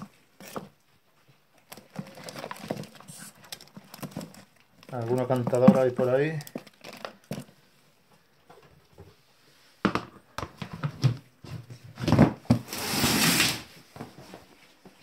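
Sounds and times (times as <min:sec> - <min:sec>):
plastic lid sliding scrape: 0:12.5 - 0:13.8.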